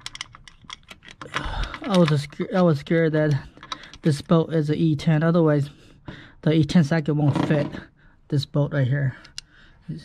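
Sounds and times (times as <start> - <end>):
hand tools clicking on bolt: 0.0 - 2.7, 3.6 - 4.1.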